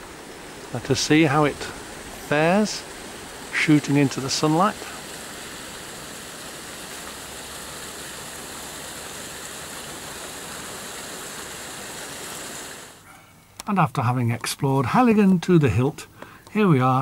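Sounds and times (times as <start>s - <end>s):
running water rushing: 0.0s - 13.0s.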